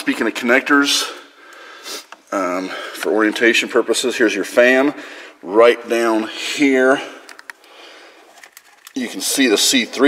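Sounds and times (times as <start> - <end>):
person talking: 9.0 - 10.0.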